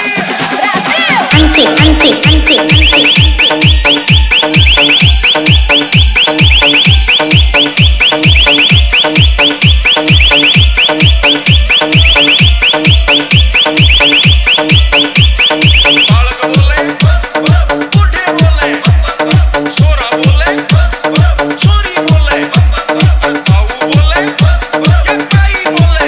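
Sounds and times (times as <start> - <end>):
high alarm-like synth chirp: 1.3 - 16.2.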